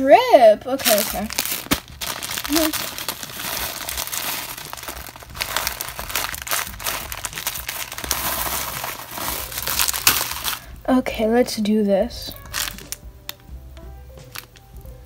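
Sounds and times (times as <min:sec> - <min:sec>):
plastic bag crinkling: 0:00.8 - 0:10.7, 0:12.3 - 0:13.0.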